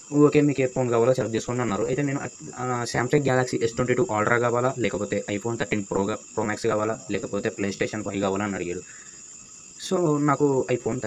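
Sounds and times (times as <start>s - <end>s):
high-pitched hiss: 0.0s - 11.0s
man talking: 0.1s - 8.8s, 9.8s - 11.0s.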